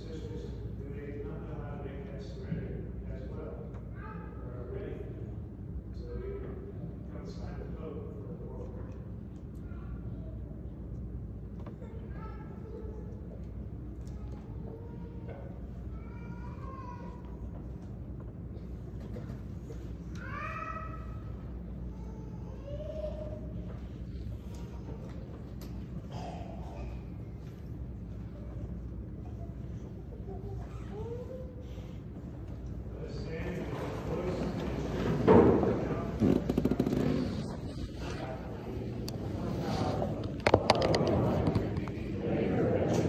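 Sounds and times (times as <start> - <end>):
low room hum: 0.0 - 43.0
murmured voices: 11.6 - 43.0
people shuffling: 33.5 - 43.0.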